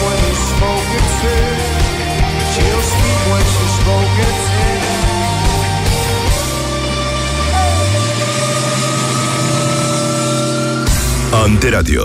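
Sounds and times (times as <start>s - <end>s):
rock band sustained chord: 0.0s - 11.3s.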